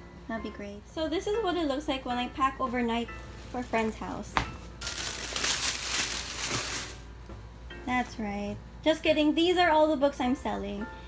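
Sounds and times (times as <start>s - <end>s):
plastic bag rustling: 4.8s - 7.1s.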